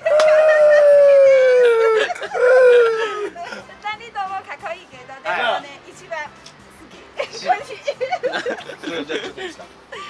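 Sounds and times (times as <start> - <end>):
short falling cry: 0.0 - 3.3.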